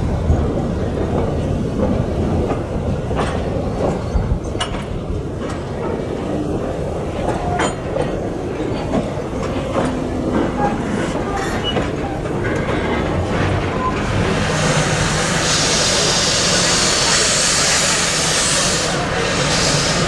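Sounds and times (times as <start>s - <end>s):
train carriages rumbling: 0.0s - 20.0s
wheels clacking on track: 0.0s - 20.0s
steam hissing: 14.0s - 20.0s.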